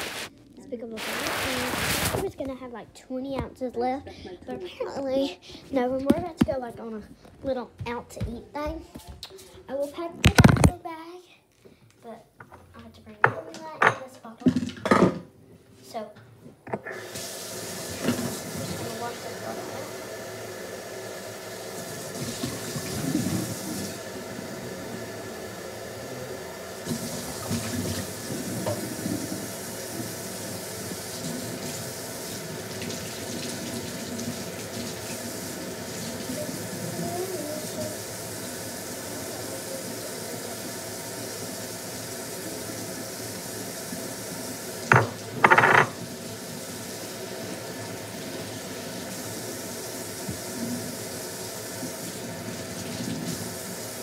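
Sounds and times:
water tap running into sink: 0:16.9 - 0:54.0.

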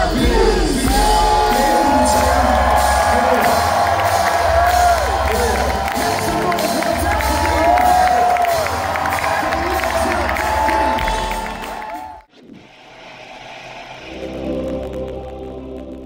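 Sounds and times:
music with choir-like voices: 0:00.0 - 0:12.1, 0:13.2 - 0:16.0
live hip-hop band playing: 0:00.0 - 0:12.2
crowd cheering and whooping: 0:00.5 - 0:14.5.

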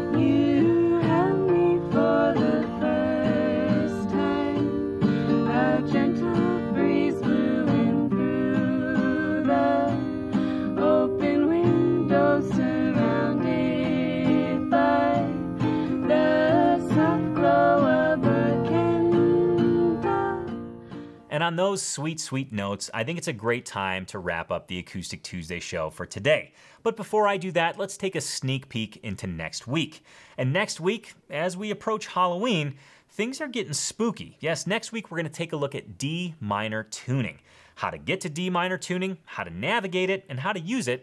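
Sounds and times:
two women singing folk song: 0:00.0 - 0:21.1
acoustic guitar playing: 0:00.0 - 0:21.6.

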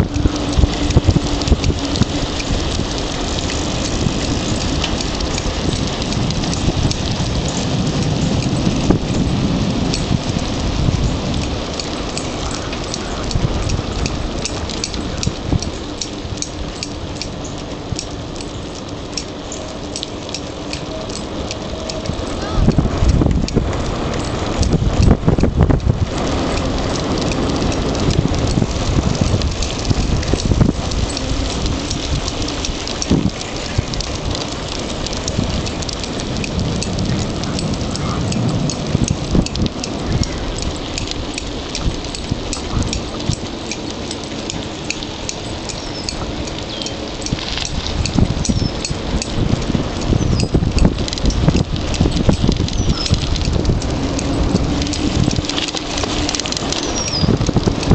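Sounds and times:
bicycle tyres rolling on asphalt: 0:00.0 - 0:57.9
bike clicks and rattles: 0:00.0 - 0:57.9
wind on microphone: 0:00.0 - 0:57.9.

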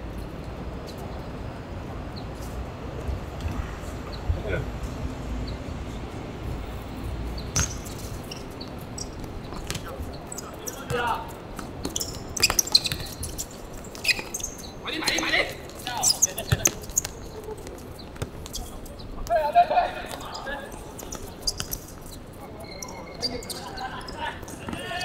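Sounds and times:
ball being kicked: 0:07.5 - 0:08.0.

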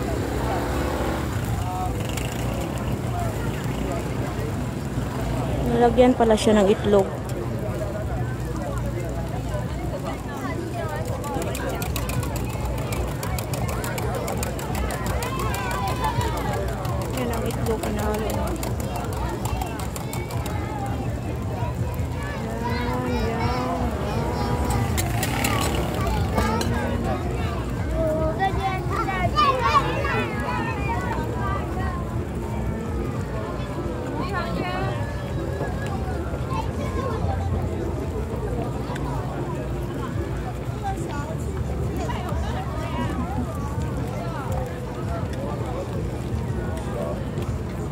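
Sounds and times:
background voices: 0:16.4 - 0:29.0.

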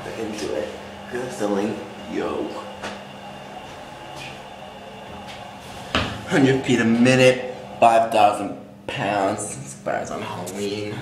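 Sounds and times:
elevator hum and rumble: 0:00.0 - 0:11.0.

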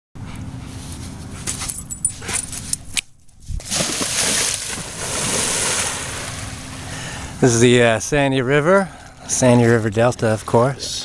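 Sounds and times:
dog splashing through water: 0:03.6 - 0:06.7.

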